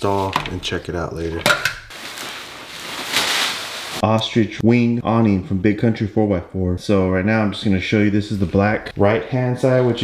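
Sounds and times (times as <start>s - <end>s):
plastic wrap rustling: 1.9s - 4.0s.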